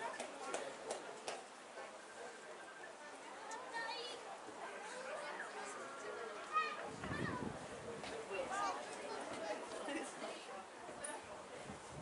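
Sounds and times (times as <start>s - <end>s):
distant people shouting and talking: 0.0s - 11.7s.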